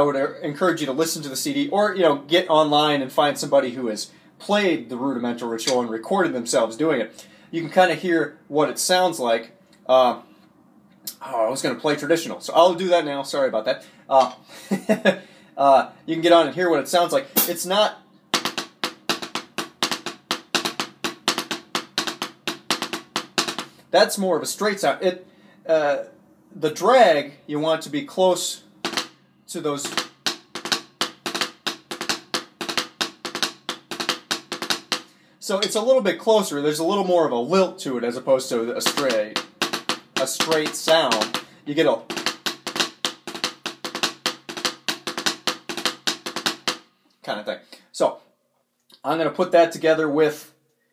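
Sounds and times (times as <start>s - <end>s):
drumsticks on practice pad: 17.4s - 23.9s, 28.8s - 29.2s, 29.8s - 35.8s, 38.8s - 46.9s.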